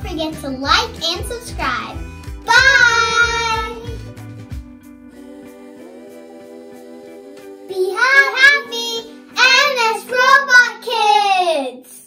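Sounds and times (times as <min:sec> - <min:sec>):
child singing: 0:00.0 - 0:04.0, 0:05.2 - 0:11.4
soft background music: 0:00.0 - 0:12.0.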